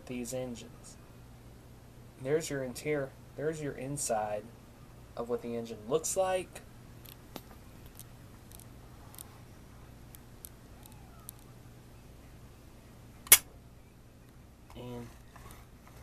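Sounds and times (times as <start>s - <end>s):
steady low hum: 0.0s - 16.0s
faint small clicks: 10.1s - 11.5s
sharp click: 13.2s - 13.5s.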